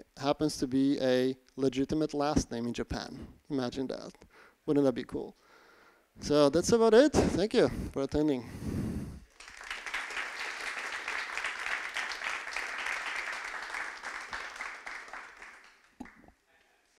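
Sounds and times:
audience applauding: 9.3s - 16.3s.

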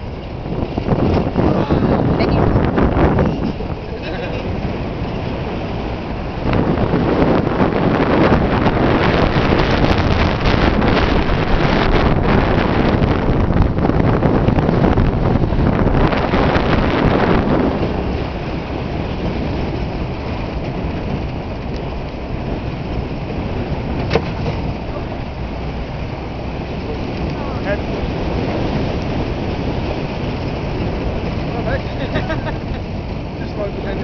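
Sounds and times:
truck engine and road noise: 0.0s - 34.0s
wind rushing over microphone: 0.0s - 34.0s.

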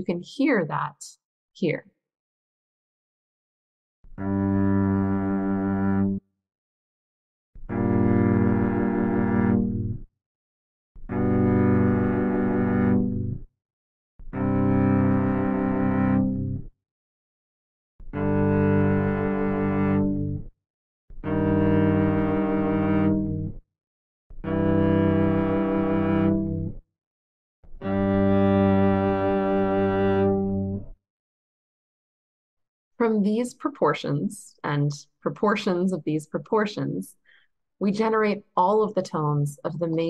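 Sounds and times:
low string tone: 27.8s - 30.9s.

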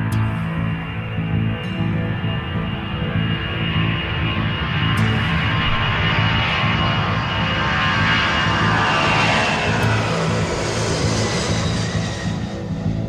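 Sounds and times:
aircraft flying past: 0.0s - 13.0s.

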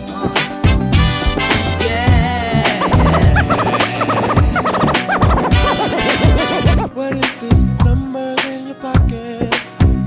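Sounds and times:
hip-hop music: 0.1s - 10.0s
turntable scratching: 2.7s - 6.9s.

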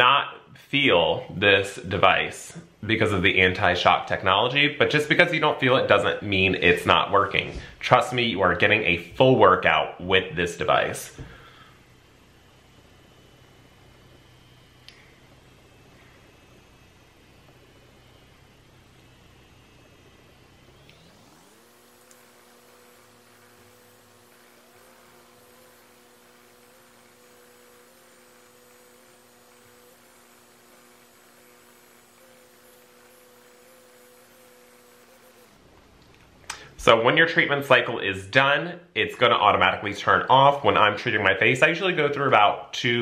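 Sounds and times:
facial device electric hum: 0.0s - 37.0s.

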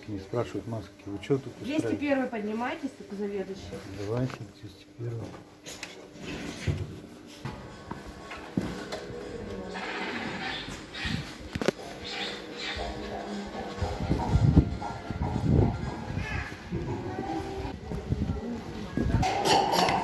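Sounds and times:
background music: 7.4s - 20.0s
muffled voices: 8.0s - 20.0s
heavy low thumps: 13.8s - 19.2s.

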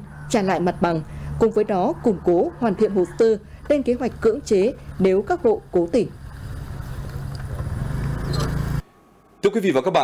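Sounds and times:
vehicle traffic rumble: 0.0s - 8.8s.

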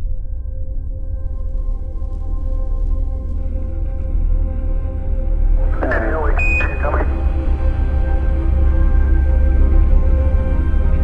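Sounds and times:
ambient music with low drone: 0.0s - 11.0s
radio-transmitted voice: 5.7s - 7.2s
high beep: 5.9s - 7.2s.

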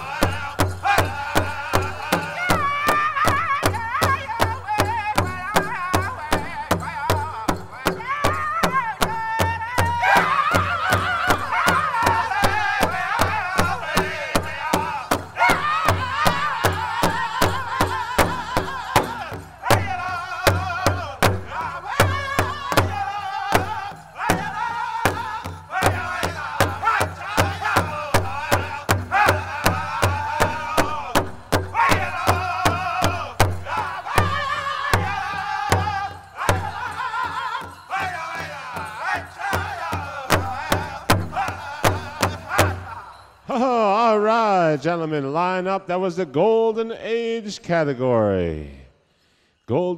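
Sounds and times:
group singing in unison: 0.0s - 4.0s, 9.8s - 44.7s
fast beat on large drum: 0.0s - 43.0s.

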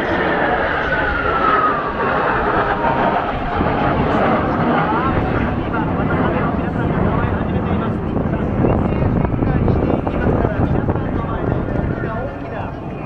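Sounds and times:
jet roar: 0.0s - 13.0s
jet whine falling in pitch: 0.0s - 13.0s.

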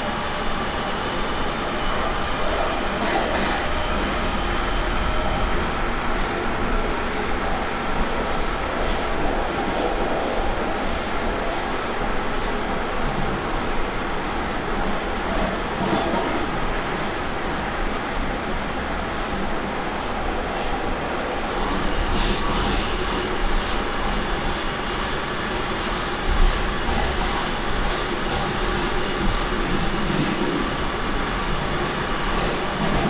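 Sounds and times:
train wheels rumbling: 0.0s - 33.0s.

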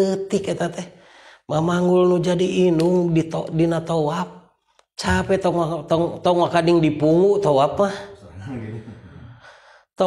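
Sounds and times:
person speaking: 5.0s - 9.4s.

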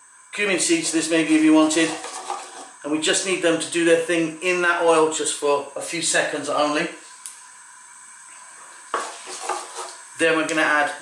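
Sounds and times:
seeds sizzling in oil: 0.0s - 11.0s
spatula scraping pan: 0.7s - 2.8s, 8.6s - 10.1s.

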